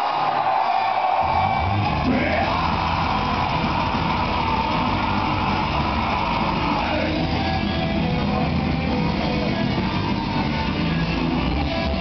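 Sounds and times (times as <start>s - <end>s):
shouted vocals: 0.0s - 12.0s
metal band playing live: 1.2s - 12.0s.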